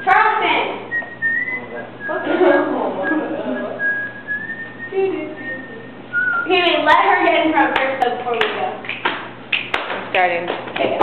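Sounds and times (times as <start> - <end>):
person whistling high note: 0.9 - 2.4, 3.0 - 6.5.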